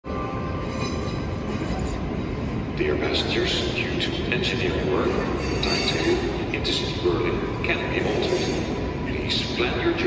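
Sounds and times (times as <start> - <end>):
train hall rumble and hum: 0.0 - 10.0.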